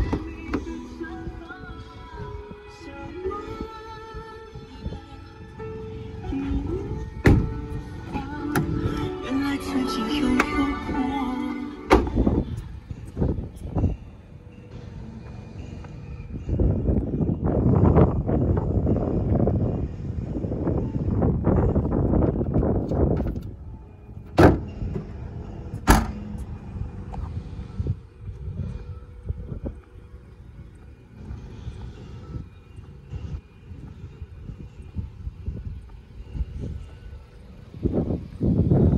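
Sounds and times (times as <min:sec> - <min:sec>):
car boot lid slamming: 0:07.2 - 0:07.6, 0:11.9 - 0:12.4, 0:24.3 - 0:25.1, 0:25.8 - 0:26.3.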